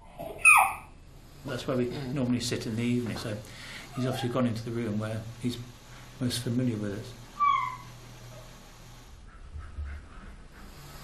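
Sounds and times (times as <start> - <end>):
dog whining: 0.1 - 0.9, 7.4 - 8.5.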